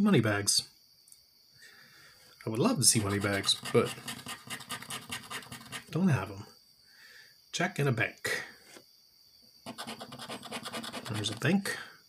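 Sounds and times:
chip scraping scratch-off ticket: 2.9s - 5.9s, 9.6s - 11.5s.

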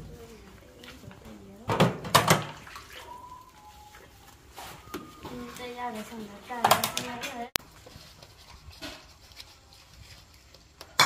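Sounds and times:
hands scrubbing food in water: 0.0s - 11.0s
water splashing in basin: 1.6s - 4.2s.

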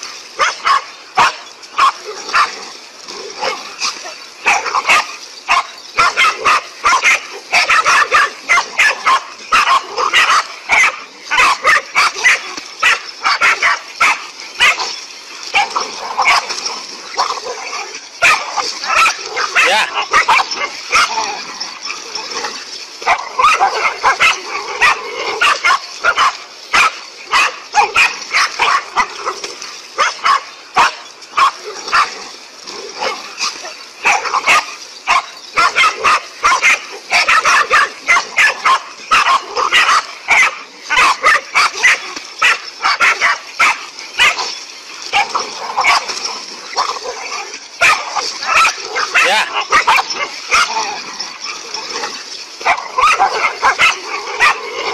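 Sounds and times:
dogs barking rapidly: 0.0s - 54.9s.

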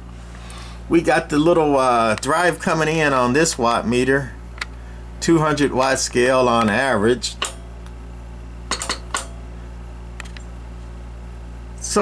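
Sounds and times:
low electrical hum: 0.0s - 12.0s
sharp click: 6.6s - 8.0s.

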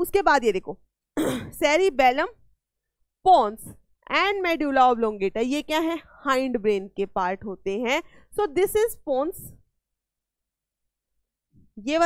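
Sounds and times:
woman clearing throat: 1.2s - 1.6s
woman speaking: 1.5s - 2.4s, 3.3s - 9.6s, 11.8s - 12.0s.

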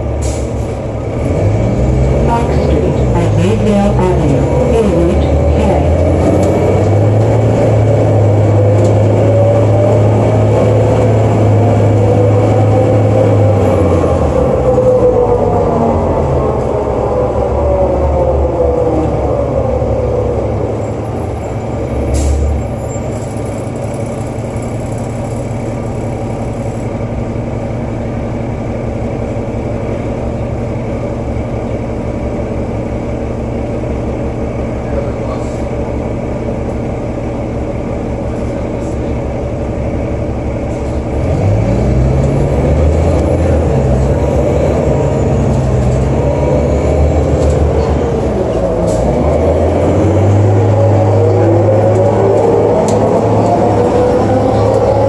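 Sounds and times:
bus engine and transmission: 0.0s - 55.0s.

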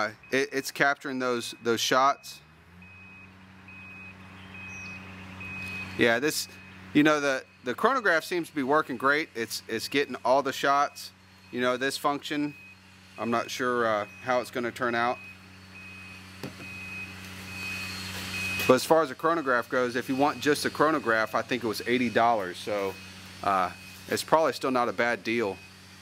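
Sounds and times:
short high beeps: 2.8s - 6.7s, 15.1s - 18.8s
electronic beeper beeping: 2.8s - 25.8s.

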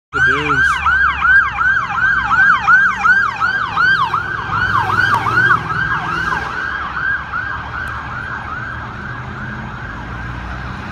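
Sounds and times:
emergency siren yelping: 0.1s - 10.9s
traffic engine rumble: 0.1s - 10.9s.

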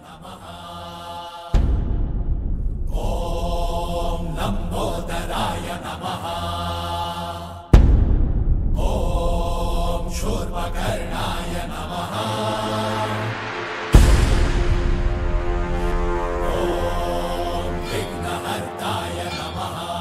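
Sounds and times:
chanted hymn: 0.0s - 1.8s, 2.9s - 7.8s, 8.8s - 20.0s
deep booming drum hit: 1.6s - 4.1s, 7.7s - 11.8s, 14.0s - 17.8s.

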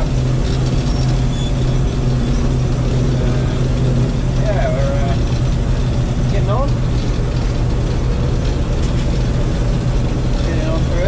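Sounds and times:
combine harvester droning: 0.0s - 11.0s.

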